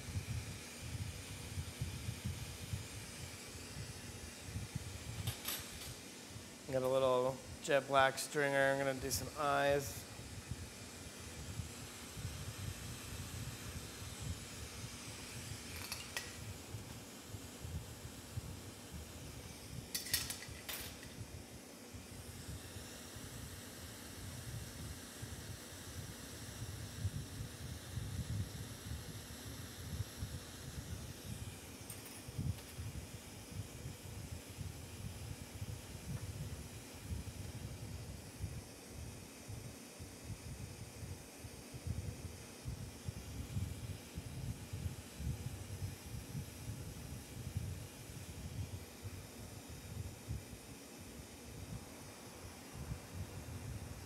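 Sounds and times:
torch flame rushing and hissing: 0.0 - 54.0.

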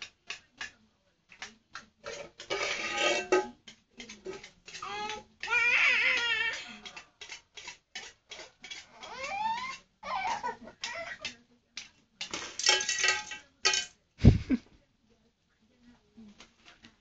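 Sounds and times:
metal bowl knocking and clinking: 1.4 - 9.8, 10.8 - 14.0
toddlers babbling and squealing: 4.7 - 7.0, 8.9 - 11.3.

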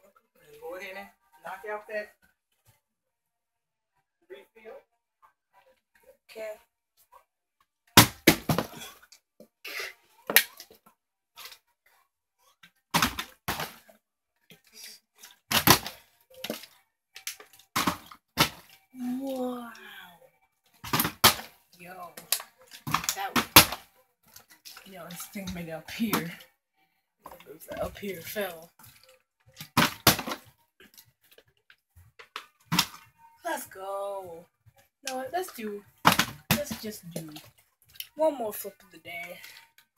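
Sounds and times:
plastic bottle knocks and thumps: 8.0 - 8.8, 13.0 - 13.8, 15.5 - 16.6, 17.8 - 18.7, 20.9 - 21.5, 22.8 - 23.8, 29.6 - 30.4, 32.2 - 33.0, 36.0 - 37.3
water bottle landing on wood: 8.0 - 8.8, 20.9 - 21.5, 29.6 - 30.4, 32.7 - 33.0, 36.0 - 36.8.

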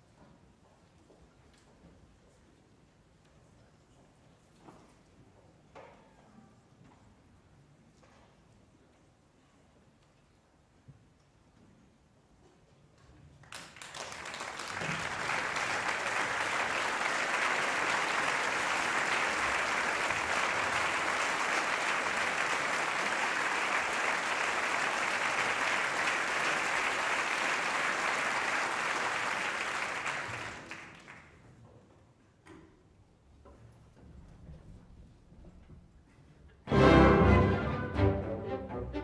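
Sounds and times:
audience applauding: 13.4 - 31.4.

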